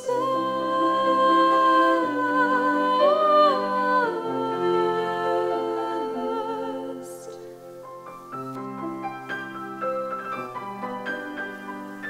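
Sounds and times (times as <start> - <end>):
women singing: 0.0 - 7.7
piano accompaniment: 0.0 - 12.0.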